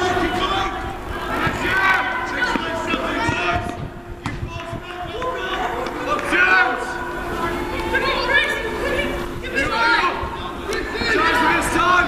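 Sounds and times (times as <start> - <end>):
murmur of voices: 0.0 - 12.0
people shouting outdoors: 0.0 - 12.0.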